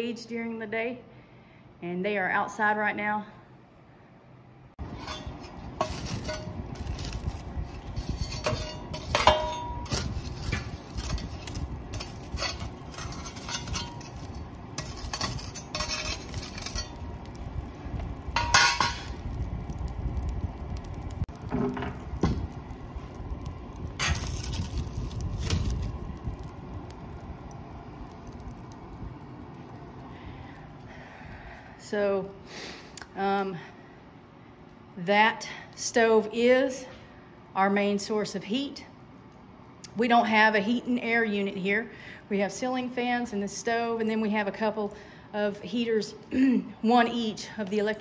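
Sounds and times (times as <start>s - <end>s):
metal fire tool clanking in stove: 4.8s - 17.4s, 18.3s - 19.2s, 24.0s - 25.8s.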